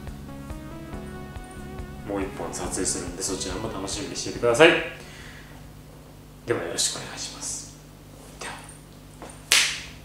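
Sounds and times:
low room hum: 0:00.0 - 0:10.0
finger snap: 0:09.5 - 0:10.0.

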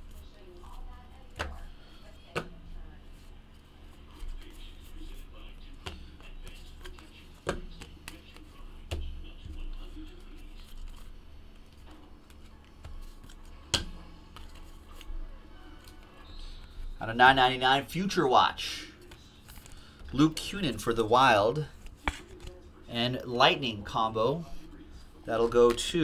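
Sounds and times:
trading cards handled: 0:00.1 - 0:17.0, 0:18.8 - 0:22.7, 0:24.5 - 0:26.0
cards clicking and tapping: 0:00.6 - 0:01.7, 0:02.3 - 0:02.6, 0:04.2 - 0:15.2, 0:19.0 - 0:20.5, 0:21.7 - 0:22.6, 0:25.3 - 0:26.0.

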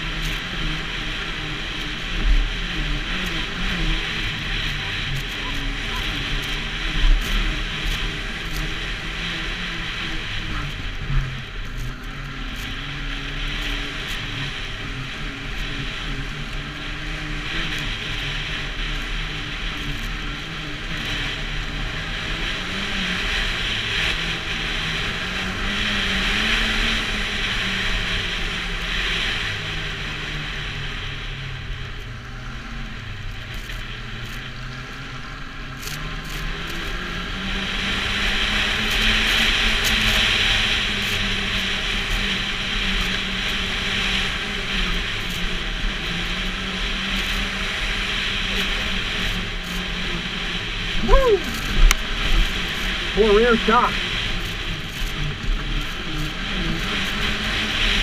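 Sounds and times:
snowmobile engine running: 0:00.0 - 0:58.0
track hissing on snow: 0:00.0 - 0:58.0
person's voice: 0:51.0 - 0:51.6, 0:53.1 - 0:54.0.

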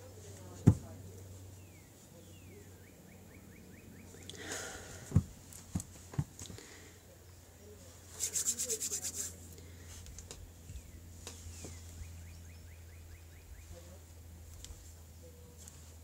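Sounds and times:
hands and sleeves rubbing: 0:08.0 - 0:09.5.

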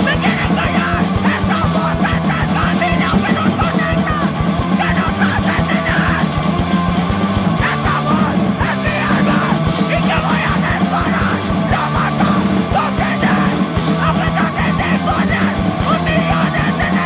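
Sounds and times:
person yelling vocals: 0:00.0 - 0:06.4, 0:07.6 - 0:17.0
hardcore punk music: 0:00.0 - 0:17.0
rapid drumming: 0:00.0 - 0:17.0.

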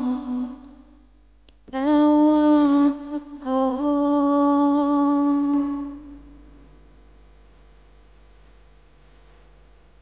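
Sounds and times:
woman singing without words: 0:00.0 - 0:01.0, 0:01.6 - 0:06.7.

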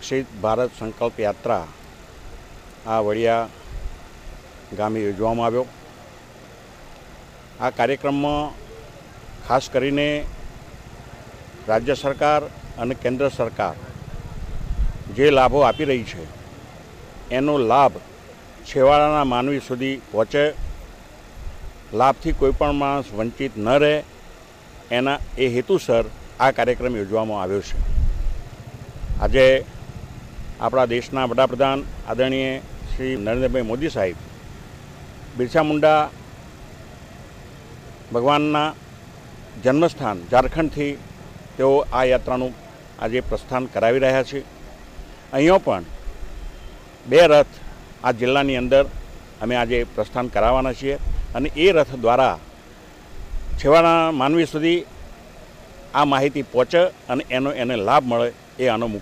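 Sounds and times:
man speaking: 0:09.4 - 0:10.3, 0:11.6 - 0:14.0, 0:15.0 - 0:16.4, 0:17.3 - 0:18.0, 0:30.6 - 0:34.2, 0:35.4 - 0:36.2, 0:38.1 - 0:38.8, 0:39.6 - 0:41.0, 0:56.0 - 0:59.0.

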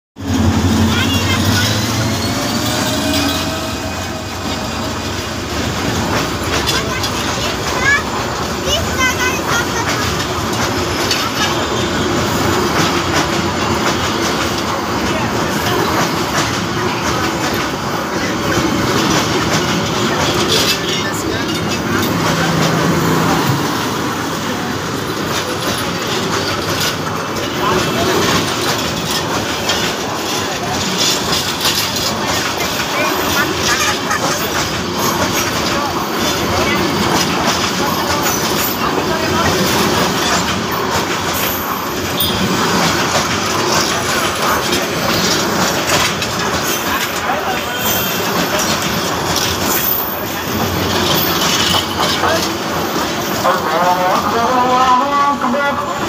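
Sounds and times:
train coaches rumbling past: 0:00.2 - 0:56.0
wheels clattering on rails: 0:00.2 - 0:56.0.

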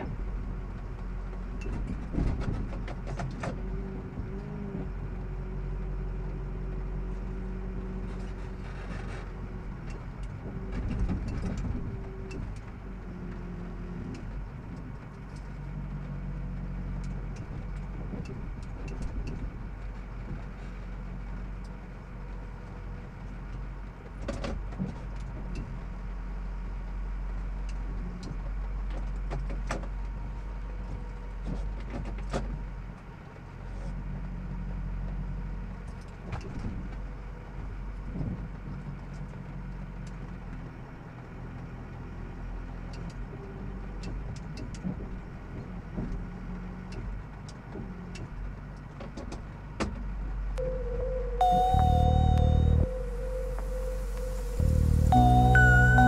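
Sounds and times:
diesel engine running: 0:00.0 - 0:28.9, 0:49.5 - 0:56.0.

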